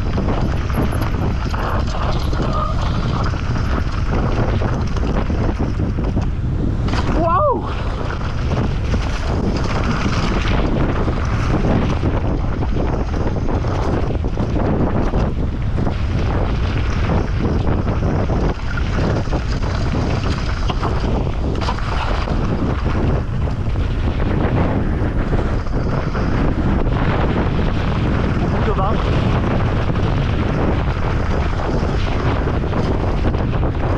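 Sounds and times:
mountain bike rattling: 0:00.0 - 0:33.9
tyres rumbling on gravel: 0:00.0 - 0:33.9
wind buffeting microphone: 0:00.0 - 0:33.9.

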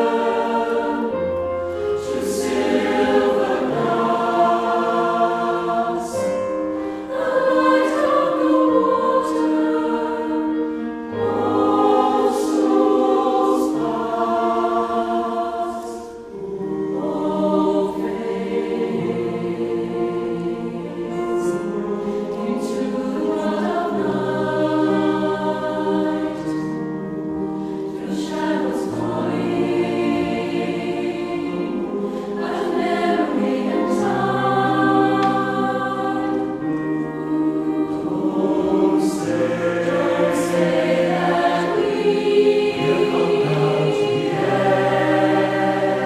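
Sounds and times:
mixed choir singing: 0:00.0 - 0:46.0.

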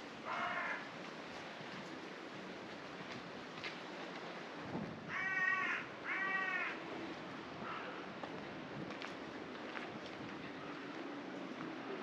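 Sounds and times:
bird cawing: 0:00.3 - 0:00.8, 0:05.1 - 0:06.8.

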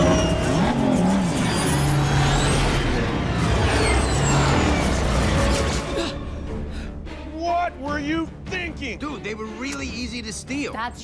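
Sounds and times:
spaceship engines roaring: 0:00.0 - 0:06.0.

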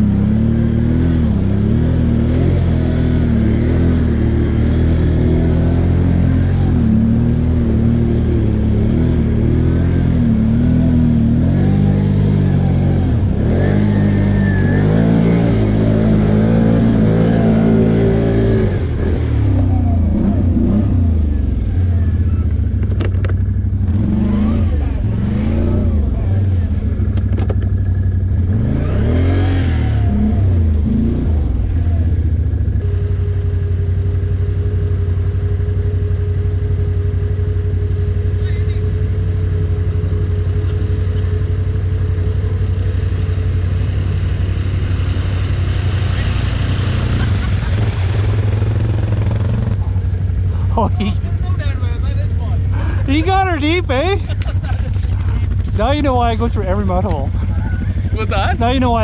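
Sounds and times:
atv engines revving: 0:00.0 - 0:59.0.

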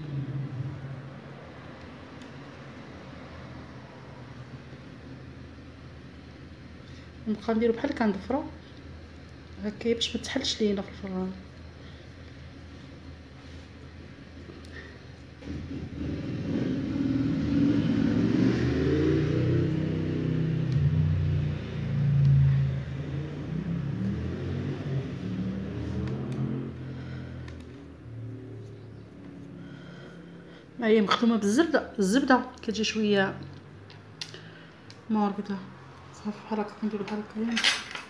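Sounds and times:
low engine rumble: 0:19.2 - 0:31.0.

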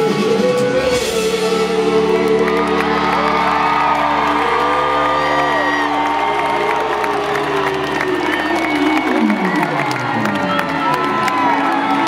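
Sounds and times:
crowd cheering and whooping: 0:00.6 - 0:12.0.

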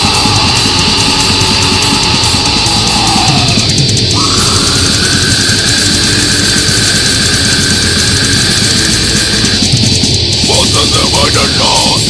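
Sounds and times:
extreme metal music: 0:00.0 - 0:12.0.

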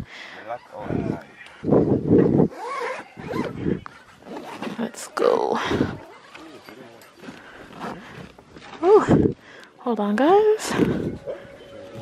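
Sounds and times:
tent fabric rustling: 0:01.8 - 0:09.4
woman speaking: 0:04.7 - 0:06.2, 0:08.8 - 0:09.2, 0:09.8 - 0:11.0.

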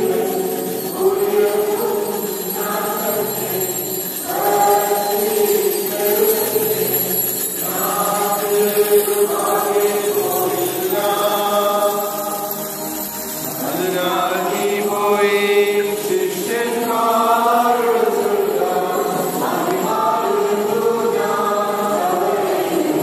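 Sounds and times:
choir chanting a hymn: 0:00.0 - 0:23.0.

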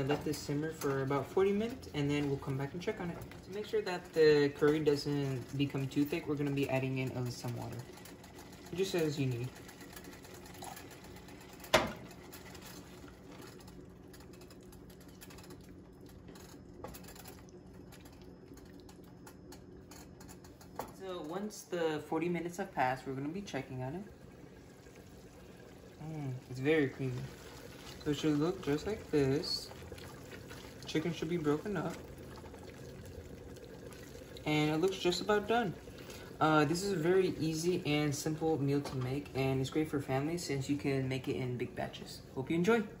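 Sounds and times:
wooden spoon stirring in pot: 0:00.0 - 0:21.6, 0:22.5 - 0:41.8
steady low hum: 0:00.0 - 0:43.0.

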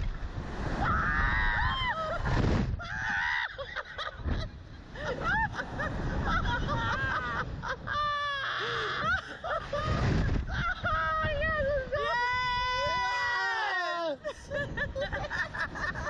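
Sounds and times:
wind rumbling on microphone: 0:00.0 - 0:16.0
people laughing and shrieking: 0:00.8 - 0:16.0.

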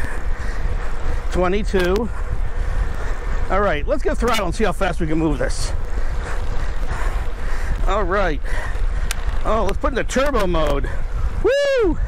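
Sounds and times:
road noise from tyres: 0:00.0 - 0:12.0
wind rumble on microphone: 0:00.0 - 0:12.0.

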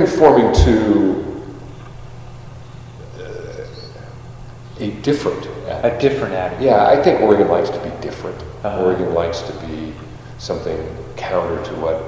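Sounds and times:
man speaking: 0:00.0 - 0:01.5, 0:03.0 - 0:04.2, 0:04.8 - 0:12.0
low background hum: 0:00.0 - 0:12.0.

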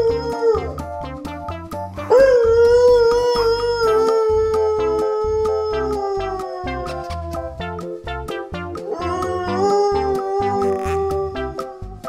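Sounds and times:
dog howling: 0:00.0 - 0:00.8, 0:02.1 - 0:07.5, 0:08.9 - 0:11.9
background music with steady beat: 0:00.0 - 0:12.0.

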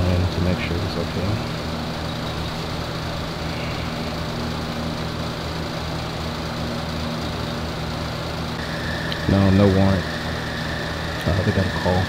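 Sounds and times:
low mechanical hum: 0:00.0 - 0:12.0
thin high tone: 0:08.6 - 0:12.0.

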